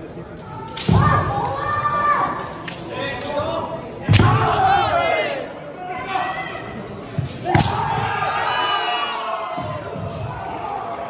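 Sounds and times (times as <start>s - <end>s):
fencers shouting: 3.2s - 6.8s.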